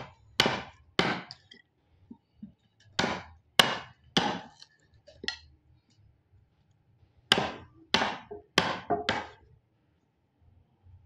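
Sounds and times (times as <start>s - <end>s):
hammer striking chisel: 0.0s - 1.6s, 2.9s - 4.6s, 7.3s - 9.4s.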